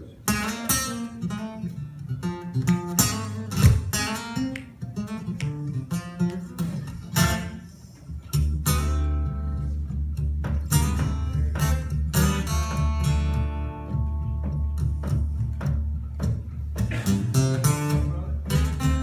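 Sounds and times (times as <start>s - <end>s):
blues guitar strumming and picking: 0.1s - 19.0s.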